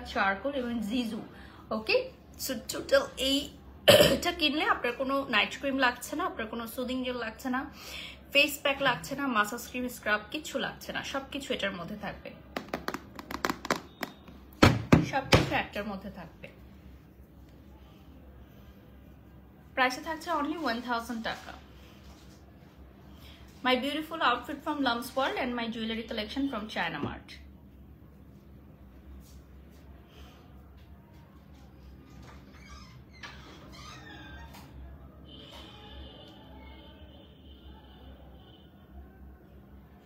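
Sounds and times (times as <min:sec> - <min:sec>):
fingernails tapping plastic lid: 0:12.6 - 0:14.1.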